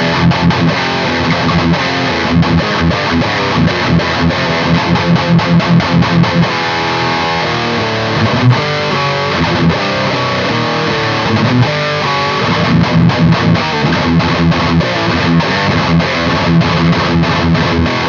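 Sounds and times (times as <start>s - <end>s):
distorted electric guitar: 0.0s - 18.0s.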